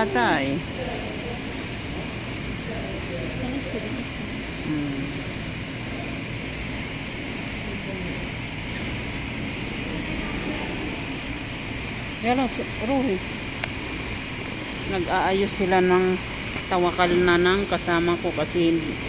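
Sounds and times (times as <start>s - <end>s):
faint voices: 0.0s - 13.4s
mechanical hum: 0.0s - 19.0s.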